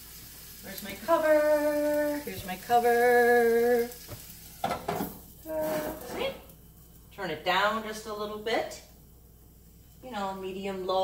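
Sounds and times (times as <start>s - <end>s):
food sizzling in a frying pan: 0.0s - 11.0s.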